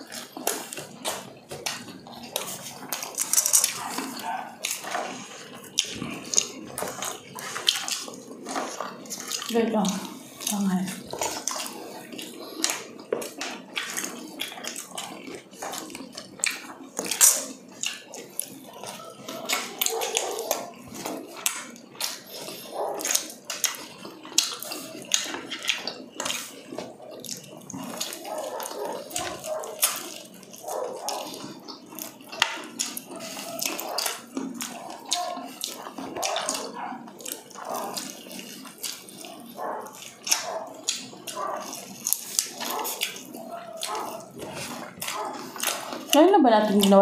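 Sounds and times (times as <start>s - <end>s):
crisp crunching of fried chicken: 0.0s - 47.0s
wet chewing and mouth sounds: 0.0s - 47.0s.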